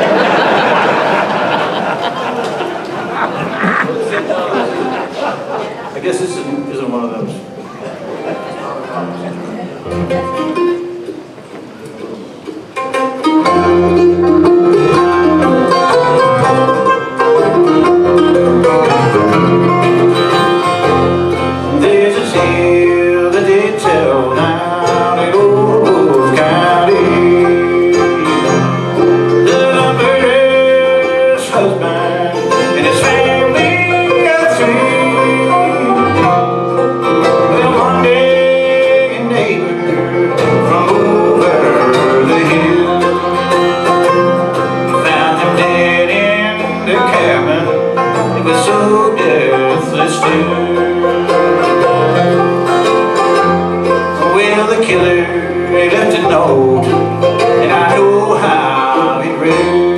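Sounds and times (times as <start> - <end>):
acoustic guitar: 0.0 - 59.9
banjo: 0.0 - 59.9
mandolin: 0.0 - 59.9
electric bass: 13.4 - 59.9.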